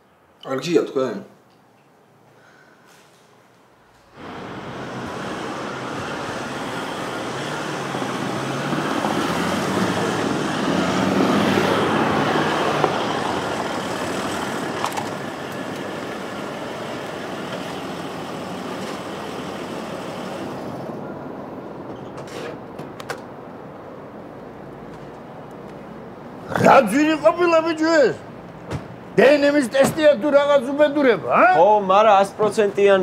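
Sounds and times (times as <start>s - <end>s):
tyres on cobblestones: 4.2s - 27.4s
car engine running: 12.7s - 20.9s.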